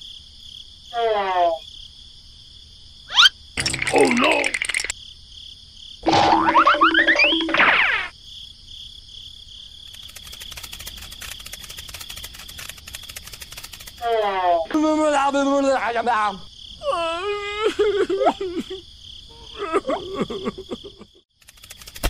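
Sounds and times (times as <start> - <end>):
insects chirping: 0.0 - 22.0
cartoon sound effect burst: 3.1 - 4.6, 6.0 - 8.1
cartoon boing pitch glides: 6.1 - 8.1
fast dry clicks: 9.8 - 14.1, 21.3 - 22.0.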